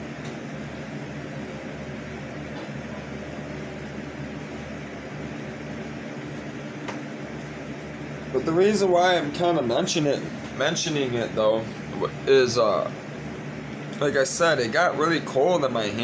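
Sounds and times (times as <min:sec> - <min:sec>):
appliance humming: 0:00.0 - 0:16.0.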